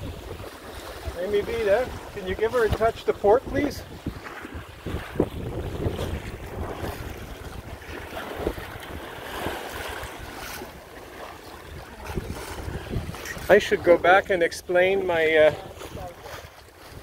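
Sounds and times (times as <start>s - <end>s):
water washing along hull: 0.0s - 17.0s
wind on microphone: 0.0s - 17.0s.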